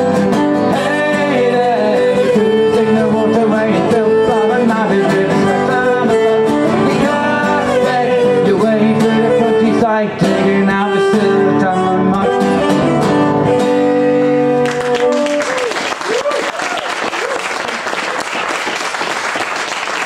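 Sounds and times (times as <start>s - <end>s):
strummed acoustic guitar: 0.0s - 15.1s
fiddle melody: 0.0s - 15.2s.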